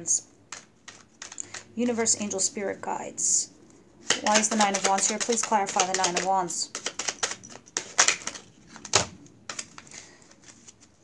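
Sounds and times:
cards being shuffled: 0:00.5 - 0:01.8, 0:04.0 - 0:11.0.

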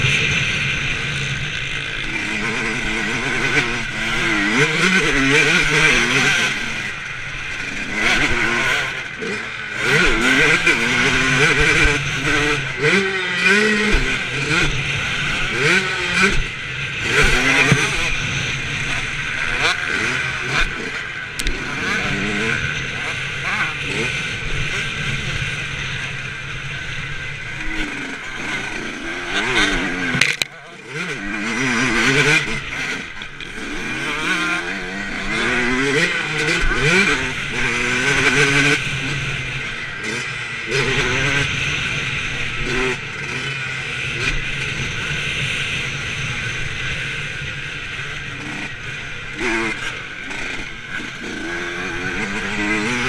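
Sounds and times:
motocross bike engine revving: 0:00.0 - 0:53.0.

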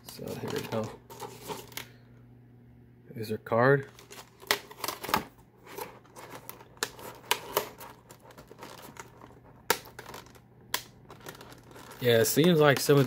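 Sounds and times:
plastic packaging crinkling: 0:00.0 - 0:02.0, 0:03.8 - 0:13.0
packaging snapping: 0:03.9 - 0:13.0.

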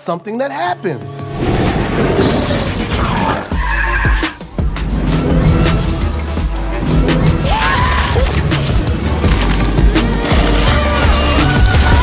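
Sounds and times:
film music and sound effects: 0:00.0 - 0:12.0.

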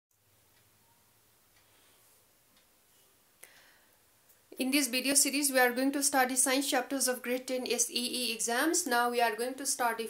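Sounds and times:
soft ticks: 0:00.1 - 0:00.8, 0:01.5 - 0:04.6.

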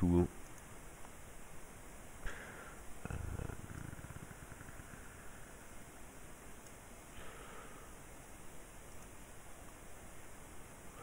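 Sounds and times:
steady hiss: 0:00.0 - 0:11.0.

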